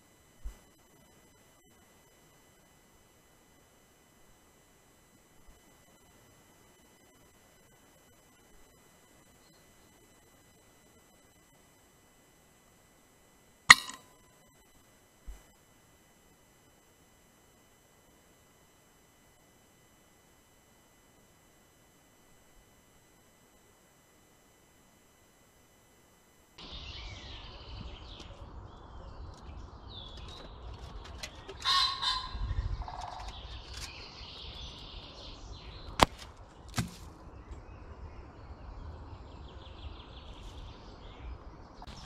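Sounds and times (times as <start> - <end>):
faint electronic hum: 0.0 - 42.0
birds chirping: 26.6 - 42.0
loud harsh bird call: 31.6 - 32.4.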